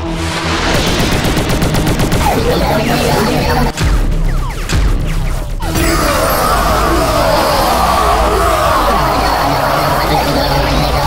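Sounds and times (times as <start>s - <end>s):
cartoon machine gun bursts: 0.8s - 3.8s.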